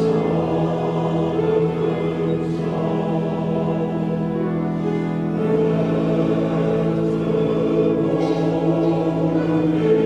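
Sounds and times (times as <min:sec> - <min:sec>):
men's choir singing a hymn: 0:00.0 - 0:10.0.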